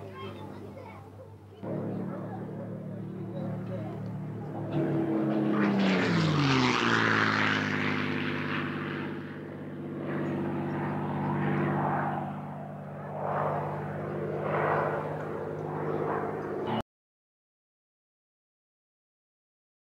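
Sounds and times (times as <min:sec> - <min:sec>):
propeller engine drone: 0:00.0 - 0:16.8
propeller plane fly-past: 0:00.0 - 0:16.8.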